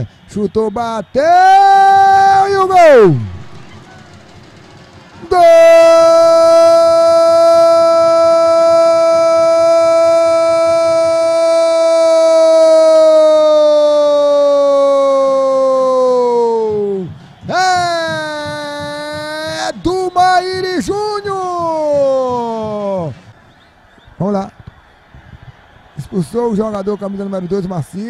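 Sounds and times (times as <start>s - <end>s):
commentator shouting: 0.8s - 4.4s, 5.0s - 23.2s.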